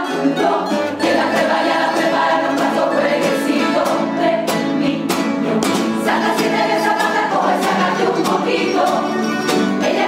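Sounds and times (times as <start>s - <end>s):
choir singing together: 0.0s - 10.0s
strummed guitars: 0.0s - 10.0s.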